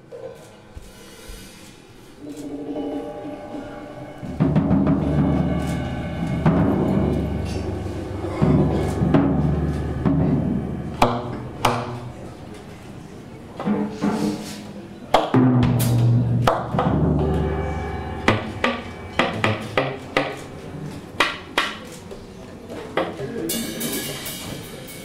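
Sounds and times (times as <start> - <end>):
sharp drum hits: 2.2 - 13.1, 15.4 - 21.9
rolling drums: 2.2 - 14.4, 15.3 - 22.3.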